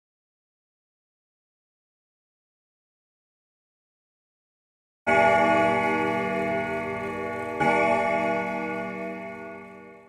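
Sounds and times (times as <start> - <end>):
bell-like chime ringing: 5.1 - 10.0.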